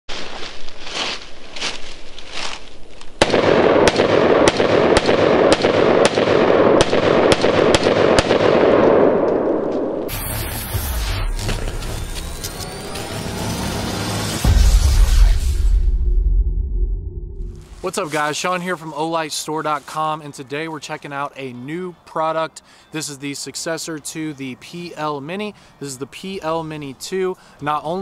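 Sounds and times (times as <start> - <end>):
low rumble: 10.0 - 17.9
sweeping whooshes: 10.1 - 18.5.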